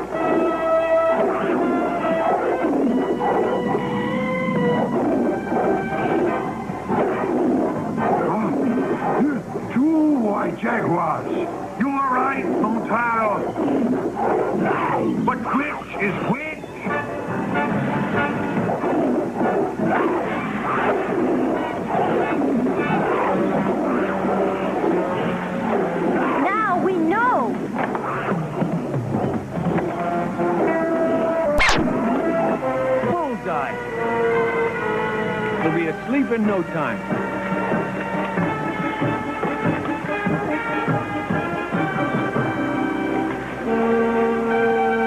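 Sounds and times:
dramatic background music: 0.0 - 16.2
animal snarls and cries: 0.0 - 33.4
sharp crack: 31.6 - 32.2.

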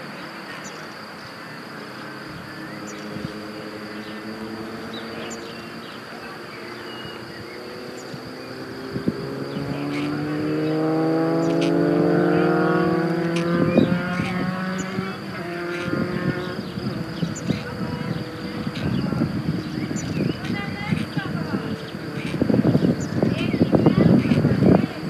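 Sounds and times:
vehicle engine passing: 0.0 - 25.0.

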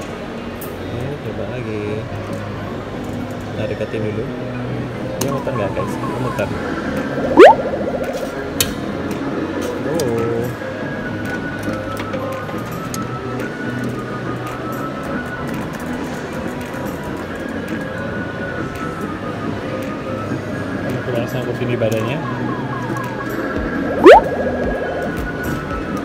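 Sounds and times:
people talking: 5.2 - 6.5
electronic arcade music: 7.4 - 7.7, 23.9 - 24.8.

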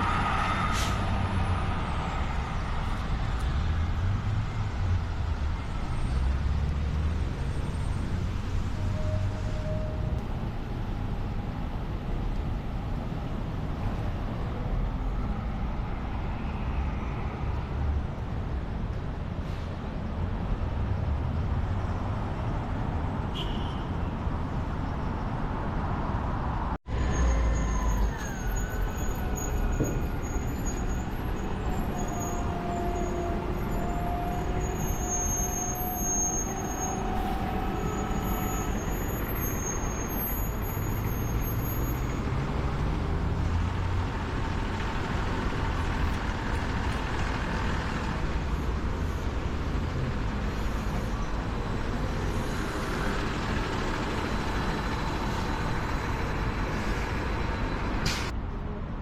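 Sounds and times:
heavy vehicle engine pulling away: 0.0 - 9.6, 27.0 - 58.4
street traffic din: 0.0 - 59.0.

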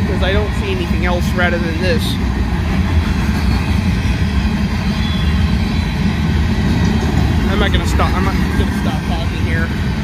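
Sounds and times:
train wheels rolling on rails: 0.0 - 10.0.

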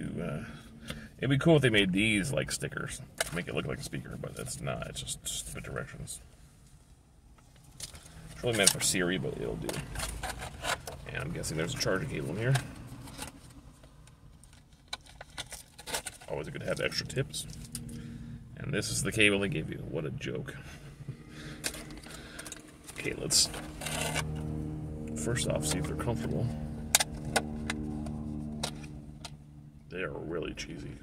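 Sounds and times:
low steady hum: 0.0 - 31.0.

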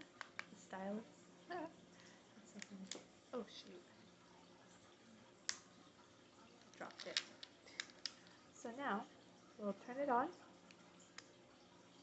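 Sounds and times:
plastic clicks of handheld console: 0.2 - 0.6, 2.6 - 3.1, 6.6 - 8.4.

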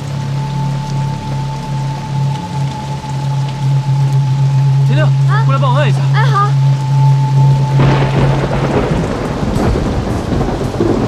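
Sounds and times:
heavy rain pouring: 0.0 - 11.0
thunder: 7.6 - 11.0.

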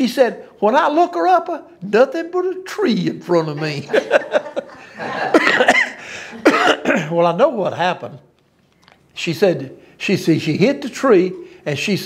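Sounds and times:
man coughing: 5.2 - 7.2.

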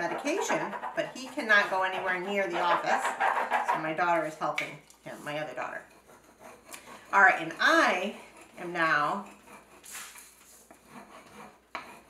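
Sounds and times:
wooden spoon rubbing tape on paper: 0.0 - 12.0.

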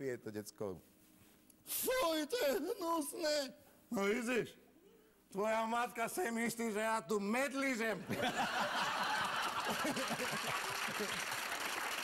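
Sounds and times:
audience laughing: 8.1 - 11.5.

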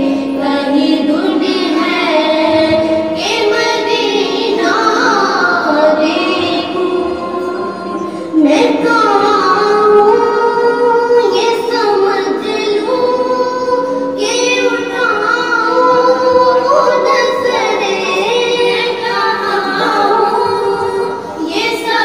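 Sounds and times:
women singing devotional poem: 0.0 - 22.0.

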